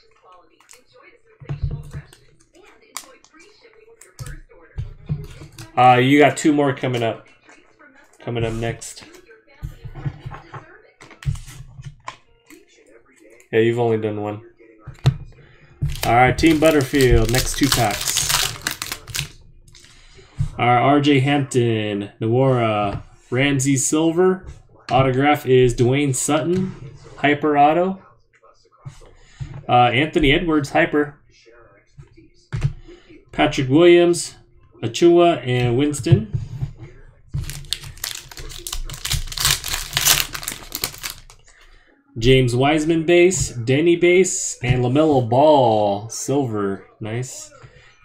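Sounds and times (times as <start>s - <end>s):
foil wrapper tearing and crinkling: 15.9s - 19.4s, 37.4s - 41.4s.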